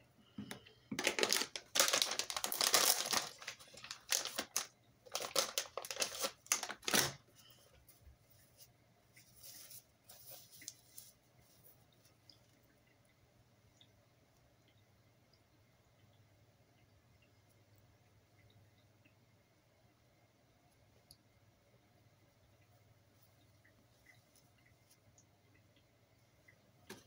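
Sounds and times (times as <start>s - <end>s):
paper tissue crinkling and rustling: 0.9s - 12.3s.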